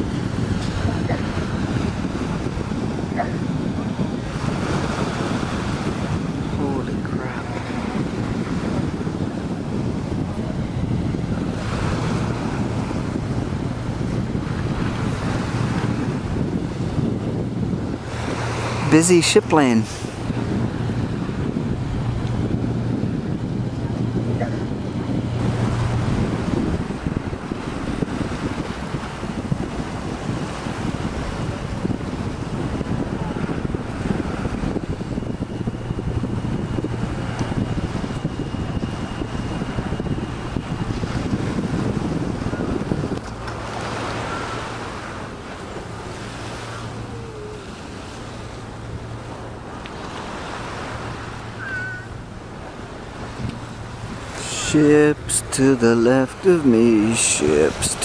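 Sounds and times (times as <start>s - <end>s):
boat engine hum: 0.0s - 58.0s
waves washing along shore: 0.0s - 58.0s
wind buffeting microphone: 0.0s - 58.0s.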